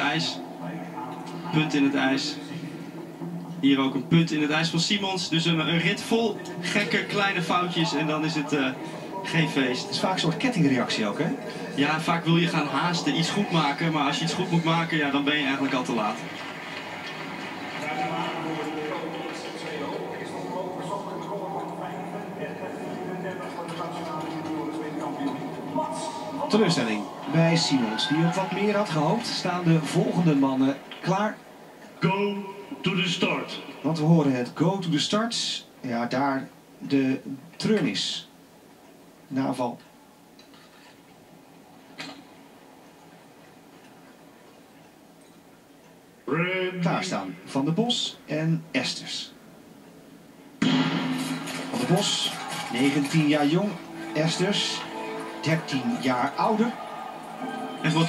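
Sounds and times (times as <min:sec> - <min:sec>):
low steady hum: 0:00.0 - 0:35.0
television broadcast voices: 0:00.0 - 0:58.0.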